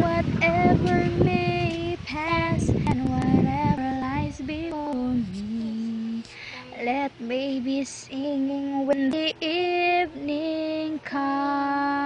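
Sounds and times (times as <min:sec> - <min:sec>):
child singing a slow melody: 0:00.0 - 0:12.0.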